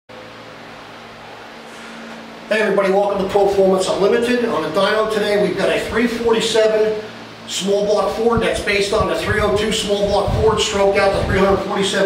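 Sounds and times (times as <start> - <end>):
ventilation fan humming: 0.1 - 12.0.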